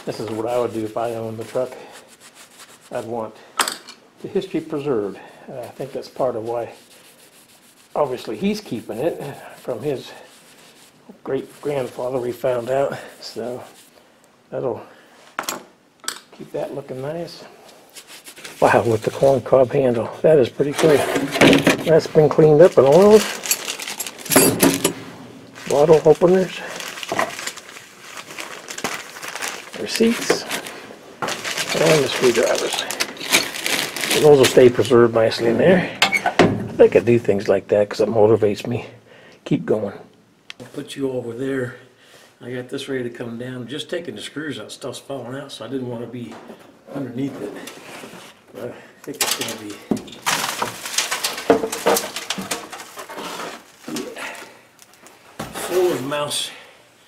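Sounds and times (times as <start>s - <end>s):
board panel rustling and scraping: 20.6s - 26.1s, 49.3s - 54.2s
debris sliding: 49.4s - 54.2s.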